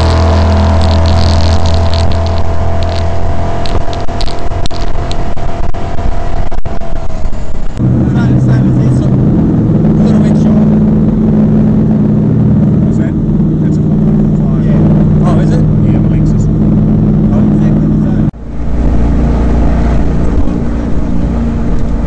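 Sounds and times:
boat engine running: 0:00.0 - 0:22.0.

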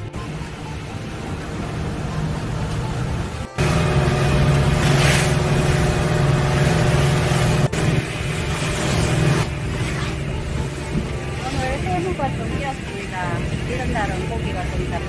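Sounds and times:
outboard motor running: 0:00.0 - 0:15.0
wake and spray rushing: 0:00.2 - 0:15.0.

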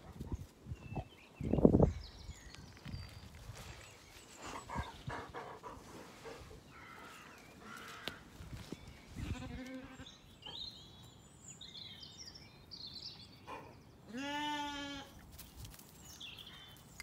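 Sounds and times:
sheep bleating: 0:14.1 - 0:15.1.

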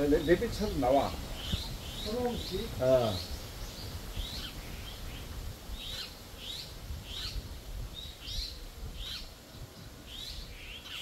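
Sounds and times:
songbird chirping: 0:00.0 - 0:11.0.

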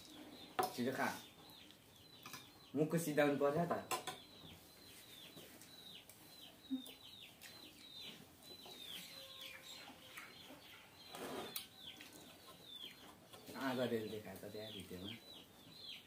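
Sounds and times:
faint birds chirping: 0:00.0 - 0:16.0.

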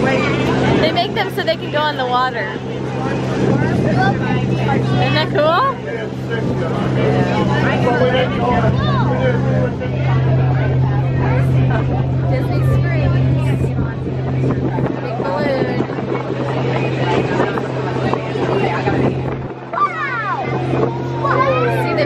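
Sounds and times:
boat engine droning: 0:00.0 - 0:22.0
passengers chatting: 0:00.0 - 0:22.0.

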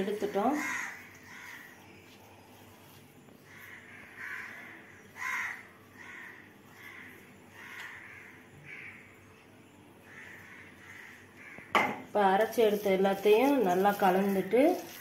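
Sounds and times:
crow cawing: 0:00.5 - 0:01.8, 0:03.5 - 0:09.1, 0:10.0 - 0:11.9.

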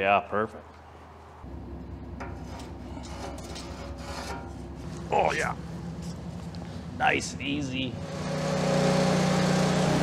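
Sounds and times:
machine hum: 0:01.4 - 0:10.0
rubbing and scraping handling noises: 0:02.2 - 0:06.7.

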